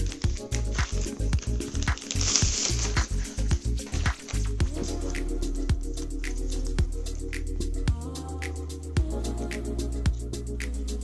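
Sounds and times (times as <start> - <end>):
plastic wrapping crinkling: 0.0 - 5.3
background music with steady beat: 0.0 - 11.0.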